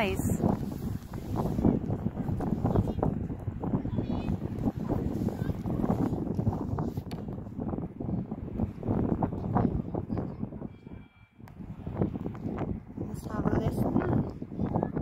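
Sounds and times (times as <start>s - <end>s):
strong wind buffeting microphone: 0.0s - 15.0s.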